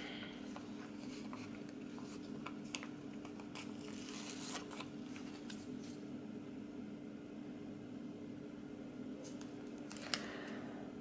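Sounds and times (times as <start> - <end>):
paper rustling: 0.5 - 6.0.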